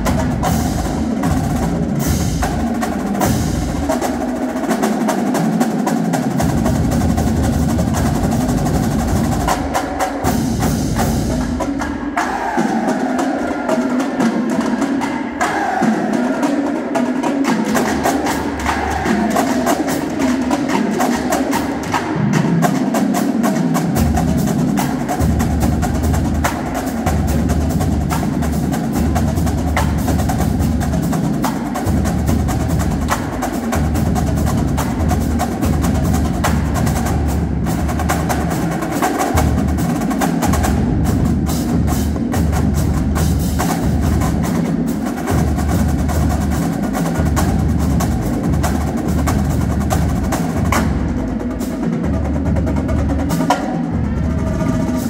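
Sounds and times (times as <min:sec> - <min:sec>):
snare drum rolls: 0:00.0 - 0:55.0
tenor drums: 0:00.0 - 0:55.0.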